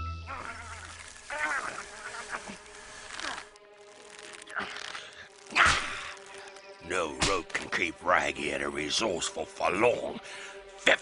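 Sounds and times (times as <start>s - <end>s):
insect-like buzzing: 0.1s - 7.6s.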